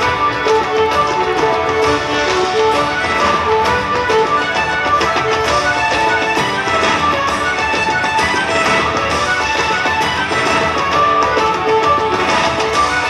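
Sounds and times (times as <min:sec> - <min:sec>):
fiddle: 0:00.0 - 0:13.0.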